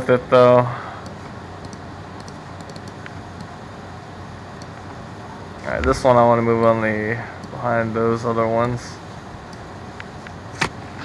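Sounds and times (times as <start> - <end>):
background hum and hiss: 0.0 - 11.0
computer mouse clicks: 1.0 - 3.5.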